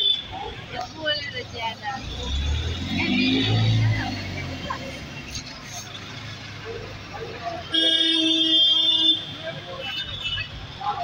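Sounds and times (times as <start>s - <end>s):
street noise: 0.0s - 11.0s
vehicle horn blast: 7.7s - 9.3s.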